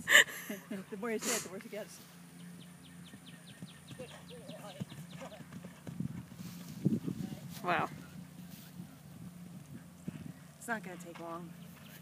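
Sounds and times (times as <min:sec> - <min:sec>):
low steady hum: 0:00.0 - 0:12.0
hoofbeats on grass: 0:03.1 - 0:10.3.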